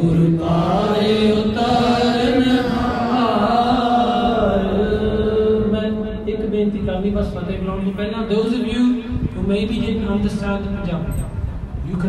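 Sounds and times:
voices chanting: 0.0s - 6.0s.

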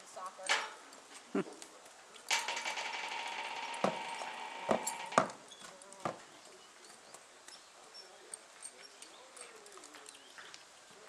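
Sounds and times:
horse hoofbeats on dirt: 2.8s - 7.2s.

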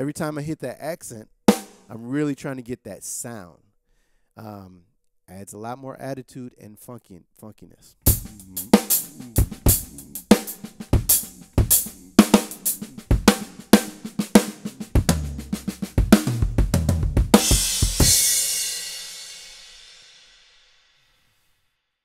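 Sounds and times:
hi-hat: 8.1s - 16.6s
snare ghost notes: 8.1s - 18.8s
bass drum: 8.1s - 19.0s.

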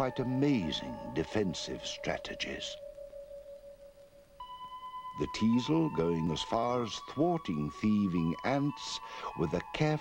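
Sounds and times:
soft sustained music tones: 0.0s - 10.0s.

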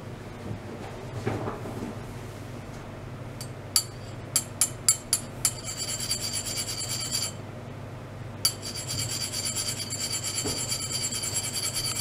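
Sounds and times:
low steady hum: 0.0s - 12.0s
high-pitched metallic ringing rasp: 4.6s - 7.4s, 8.5s - 12.0s.

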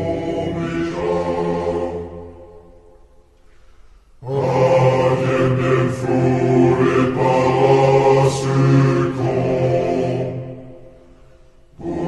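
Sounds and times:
choir singing: 0.0s - 3.0s, 4.2s - 12.0s.

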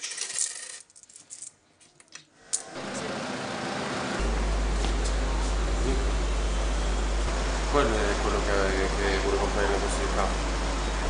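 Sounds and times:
coins clinking: 0.0s - 1.6s.

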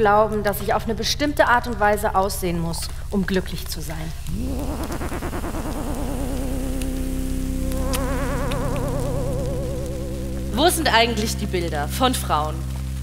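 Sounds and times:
low steady hum: 0.0s - 13.0s
higher warbling synth layer: 4.2s - 11.3s
synthesizer tone with vibrato: 4.3s - 11.5s.

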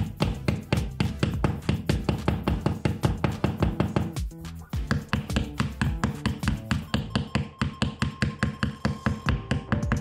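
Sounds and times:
background music with quick beat: 0.0s - 10.0s
small hammer tapping: 4.8s - 10.0s.

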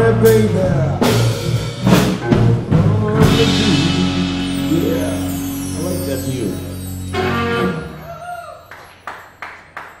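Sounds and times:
sharp hand claps: 8.7s - 10.0s.

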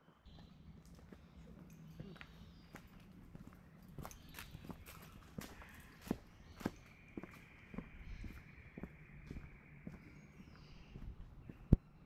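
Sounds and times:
footsteps on dirt track: 0.3s - 11.8s
steady high-pitched whine: 6.0s - 11.5s.

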